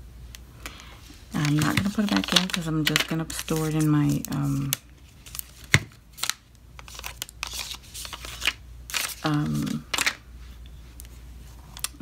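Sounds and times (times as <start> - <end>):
plastic packaging crinkling: 1.3 - 10.2.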